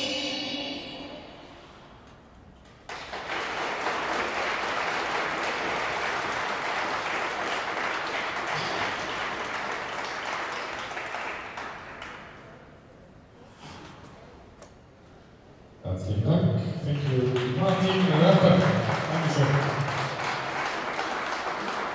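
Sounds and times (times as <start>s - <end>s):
audience applause: 2.8s - 12.6s, 16.9s - 21.9s.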